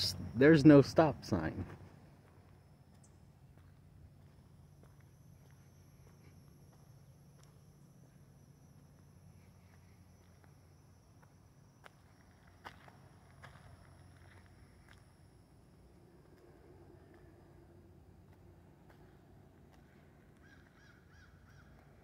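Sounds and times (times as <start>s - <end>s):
faint footsteps: 1.3s - 22.0s.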